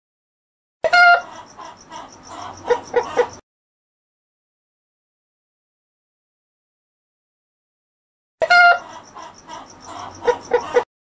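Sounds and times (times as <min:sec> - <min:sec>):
chicken clucking: 0:00.8 - 0:03.4, 0:08.4 - 0:10.9
chicken squawking: 0:00.8 - 0:03.4, 0:08.4 - 0:10.8.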